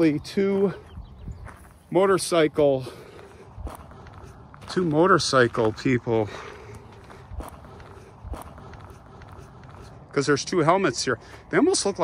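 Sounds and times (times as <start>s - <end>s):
faint outdoor background: 0.0s - 12.0s
footsteps on gravelly dirt: 0.0s - 12.0s.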